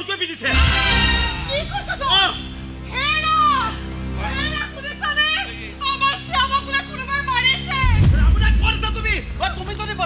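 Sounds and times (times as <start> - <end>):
background music with low notes: 0.0 - 10.0
loud low boom: 0.5 - 3.0.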